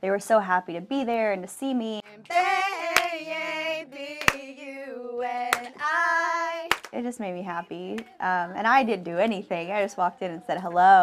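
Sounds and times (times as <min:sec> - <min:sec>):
sharp hand claps: 0:04.2 - 0:04.4, 0:05.5 - 0:05.8, 0:06.7 - 0:07.0.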